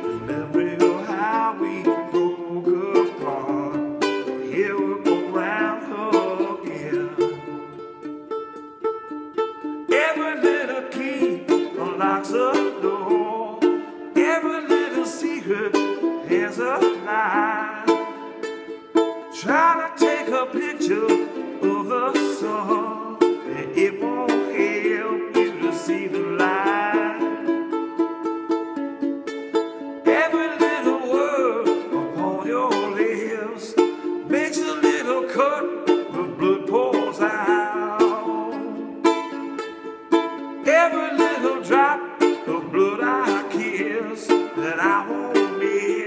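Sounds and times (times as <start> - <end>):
man singing: 0.0 - 8.1, 9.8 - 18.5, 19.2 - 27.8, 30.0 - 39.5, 40.6 - 46.0
ukulele strumming: 0.0 - 46.0.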